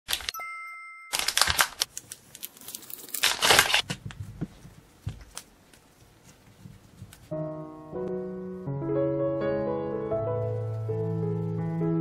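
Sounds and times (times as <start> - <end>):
plastic wrapper crinkling and tearing: 1.2 - 4.1
piano music: 7.3 - 12.0.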